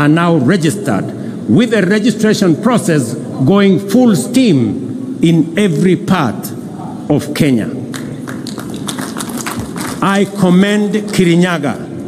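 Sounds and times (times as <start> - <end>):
audience applauding: 7.9 - 10.2.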